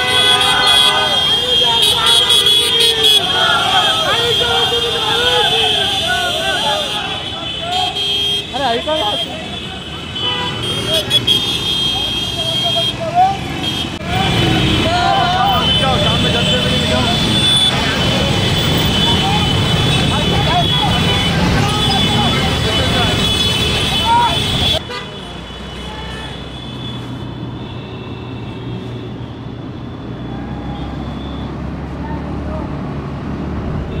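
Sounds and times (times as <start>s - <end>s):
people shouting: 0.0s - 10.0s, 10.6s - 24.8s
horns tooting: 0.0s - 32.1s
motorcycles and scooters riding: 0.0s - 34.0s.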